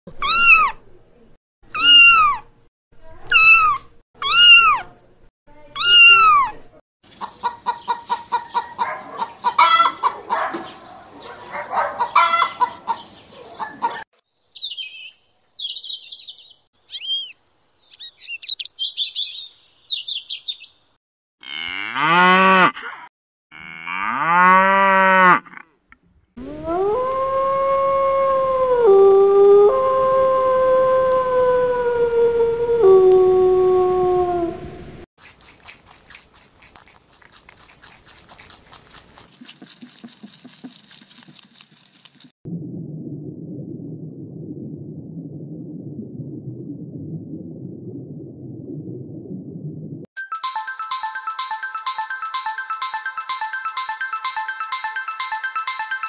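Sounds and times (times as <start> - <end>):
kittens meowing: 0.2 - 0.8, 1.7 - 2.4, 3.3 - 4.8, 5.8 - 6.6
hens clucking: 7.2 - 10.4, 12.0 - 14.0
cow mooing: 21.4 - 22.8, 23.5 - 25.6
high chirps: 50.2 - 56.0.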